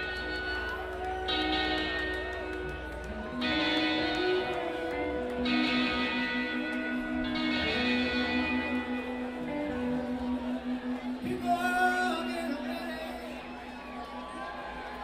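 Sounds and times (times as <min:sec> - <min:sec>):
rock band playing live: 0:00.0 - 0:13.6.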